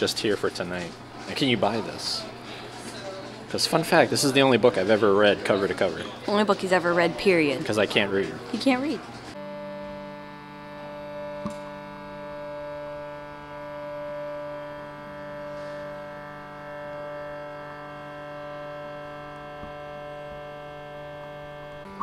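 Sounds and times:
ambient synth pad music: 9.3 - 22.0.

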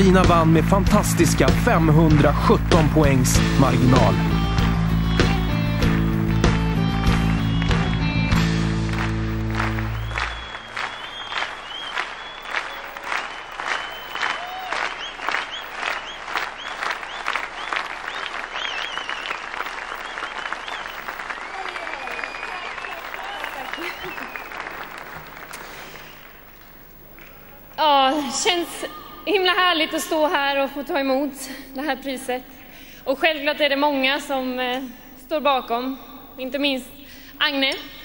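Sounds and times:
audience applauding: 2.0 - 27.6
audience whistling: 4.3 - 26.6.

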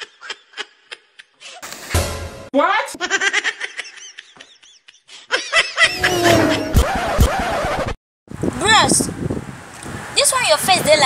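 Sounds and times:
people laughing: 3.1 - 6.6.

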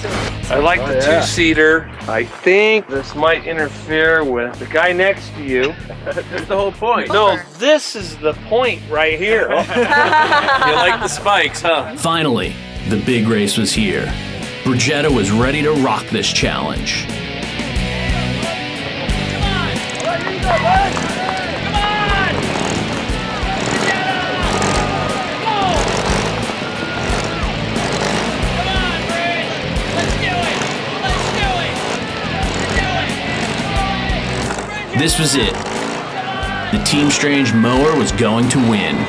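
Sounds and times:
crowd shouting and cheering: 6.8 - 8.1, 9.0 - 16.2, 16.9 - 39.0.

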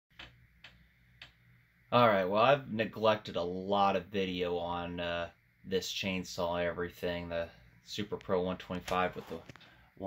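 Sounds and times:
low steady hum: 0.2 - 10.0
man speaking: 1.9 - 9.6.

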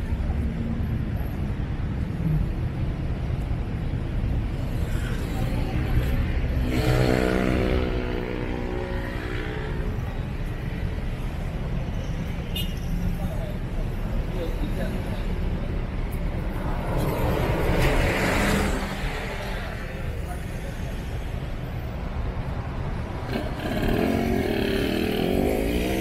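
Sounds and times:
traffic rumble: 0.0 - 26.0.

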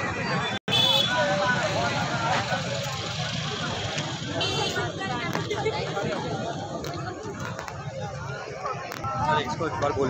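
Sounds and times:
crowd chatter: 0.0 - 10.0
road traffic rumble: 0.0 - 10.0.

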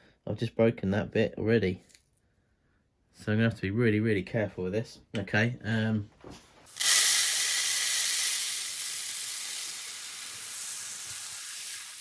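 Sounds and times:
beads pouring into plastic tub: 6.7 - 12.0.

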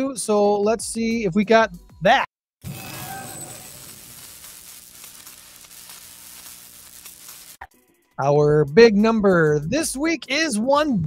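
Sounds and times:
static hiss: 2.7 - 7.7.

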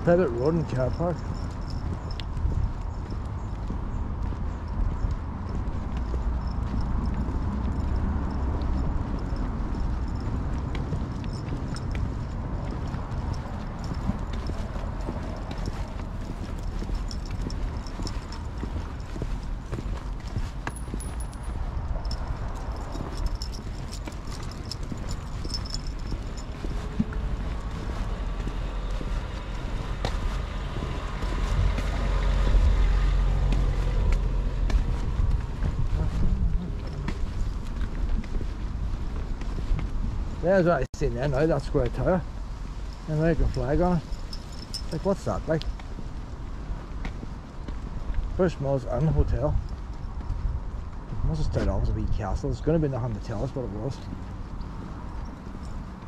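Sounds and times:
footsteps on tarmac: 0.0 - 56.0
low microphone rumble: 29.1 - 40.4.

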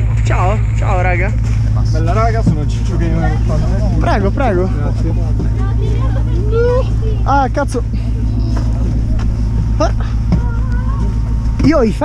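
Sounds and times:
snowcat engine drone: 0.0 - 12.0.

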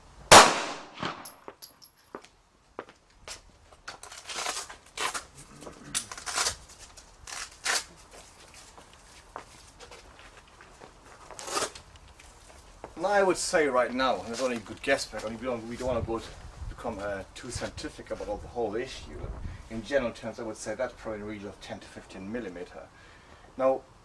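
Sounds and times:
loud gunshot: 0.3 - 1.4
hook-and-loop straps ripping: 3.3 - 10.0, 11.2 - 12.4.

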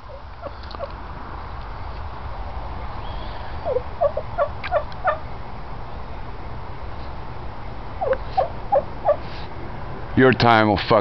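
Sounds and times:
short bird calls: 2.9 - 5.2.

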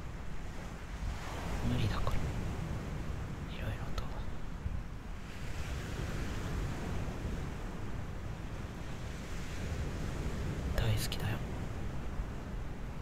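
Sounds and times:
ocean waves washing on beach: 0.0 - 13.0.

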